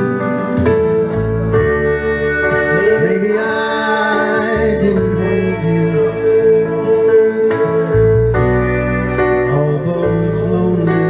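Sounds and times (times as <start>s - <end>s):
electric guitar melody: 0.0s - 11.0s
held bass line: 0.0s - 11.0s.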